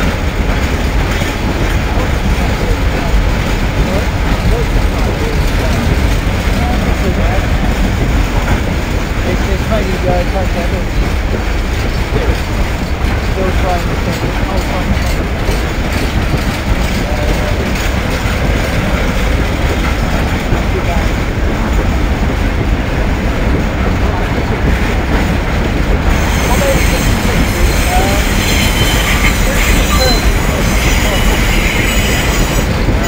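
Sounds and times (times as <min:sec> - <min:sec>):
freight train wheels rumbling: 0:00.0 - 0:33.0.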